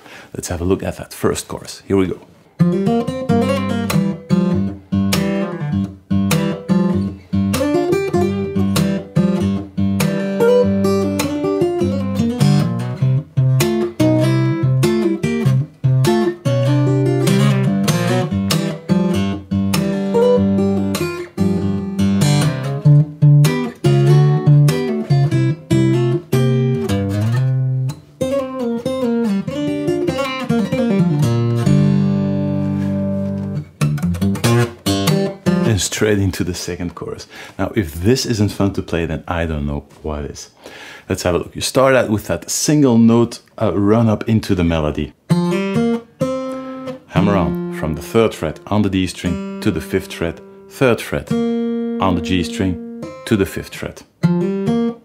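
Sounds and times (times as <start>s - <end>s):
fingerstyle blues acoustic guitar: 2.4s - 37.6s, 43.0s - 55.0s.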